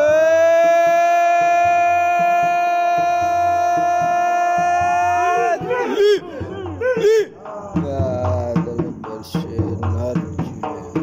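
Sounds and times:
man singing a long high note: 0.0s - 11.0s.

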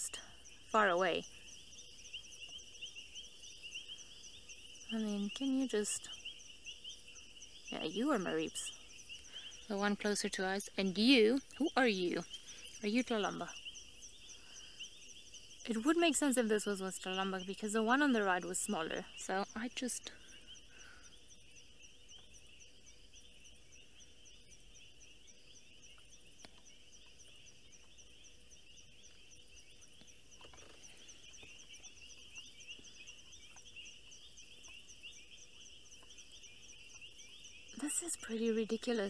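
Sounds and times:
frogs calling: 0.0s - 39.0s
insects ticking: 0.0s - 39.0s.

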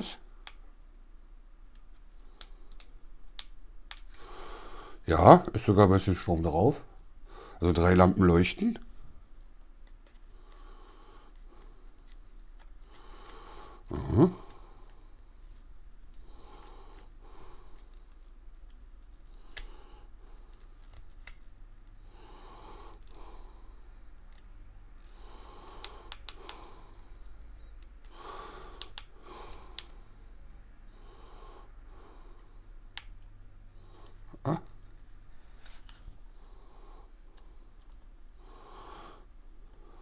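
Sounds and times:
close soft breathing: 4.1s - 5.4s, 6.1s - 7.8s, 10.2s - 18.5s, 19.2s - 21.0s, 21.9s - 33.0s, 33.6s - 40.0s.

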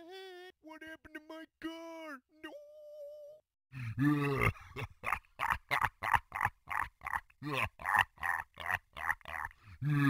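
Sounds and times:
cartoon demon evil laugh: 3.8s - 10.0s.

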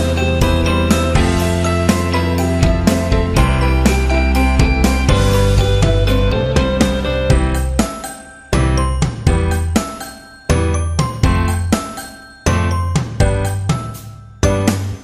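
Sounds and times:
children's tune with chiming bell notes: 0.0s - 15.0s.

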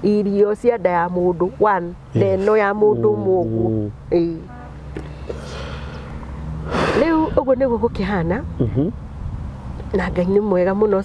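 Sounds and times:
steady low hum: 0.0s - 9.0s
person drawing sharp breath: 5.0s - 7.4s.

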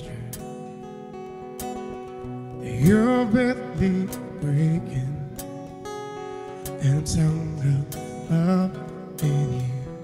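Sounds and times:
acoustic guitar strumming chords: 0.0s - 10.0s
person singing: 2.6s - 5.4s, 6.6s - 10.0s.

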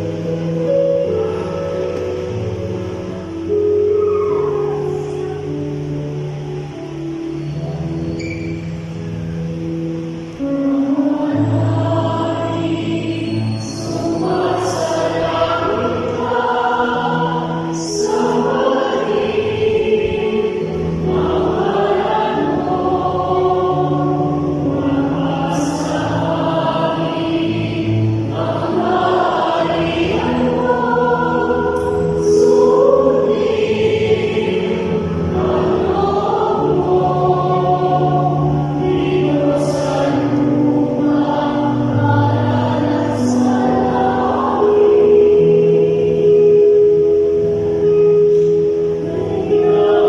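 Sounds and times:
choir singing a hymn: 0.0s - 50.0s
electronic keyboard accompaniment: 0.0s - 50.0s.

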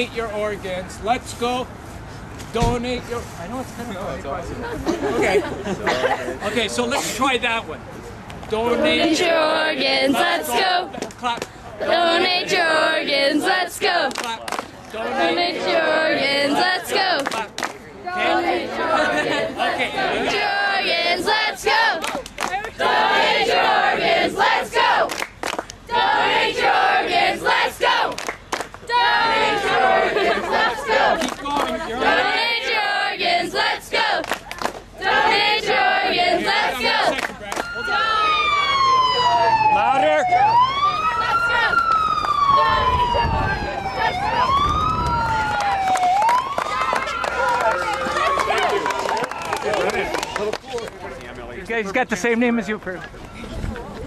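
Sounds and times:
students chanting together: 8.6s - 10.9s, 11.8s - 14.1s, 14.9s - 22.1s, 22.7s - 25.1s, 25.9s - 28.2s, 28.8s - 34.2s, 35.0s - 37.2s
hand claps: 11.0s - 11.6s, 14.0s - 14.7s, 17.2s - 17.8s, 22.0s - 22.8s, 25.1s - 25.8s, 28.1s - 28.8s, 34.2s - 34.8s, 37.1s - 37.7s, 45.6s - 51.3s
siren sweeping up and down: 37.6s - 49.0s.

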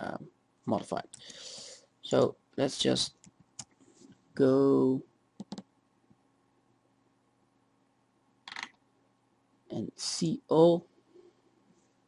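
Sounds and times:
computer mouse clicking: 5.4s - 5.7s, 8.4s - 8.8s.

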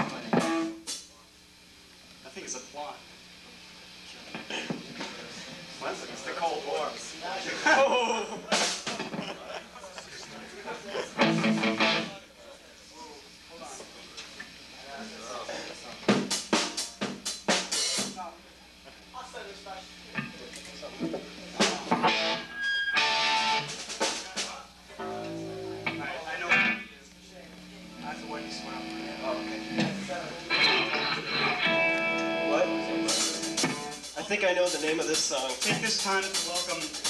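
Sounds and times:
electric guitar noodling: 0.0s - 0.9s, 10.3s - 12.2s, 20.2s - 24.2s, 24.9s - 34.2s
drum kit hits: 0.0s - 1.0s, 8.5s - 9.2s, 16.1s - 18.2s, 21.0s - 22.4s, 29.7s - 30.2s, 31.8s - 37.0s.

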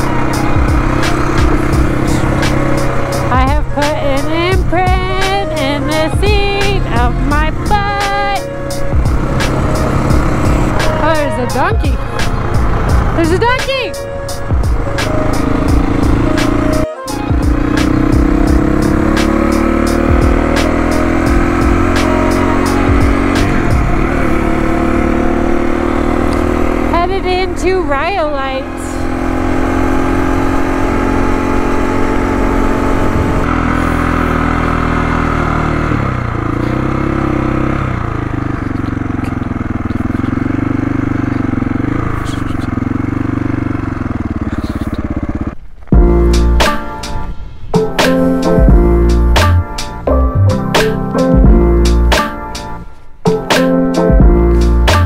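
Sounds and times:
motorcycle engine running: 0.0s - 55.0s
wind noise: 32.5s - 33.7s.

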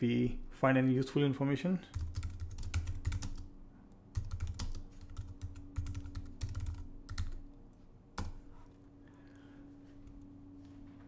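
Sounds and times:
keyboard typing: 1.9s - 3.5s, 4.1s - 7.5s.

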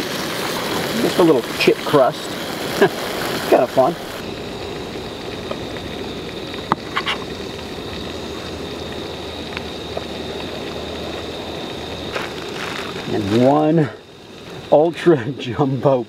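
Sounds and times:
fish sizzling in a pan: 0.0s - 16.0s.

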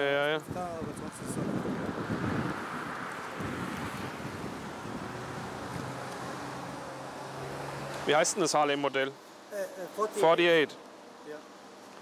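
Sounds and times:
passing traffic rush: 0.8s - 9.5s.

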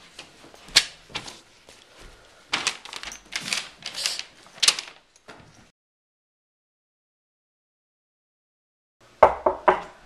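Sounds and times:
paper map rustling and crinkling: 0.0s - 5.7s.

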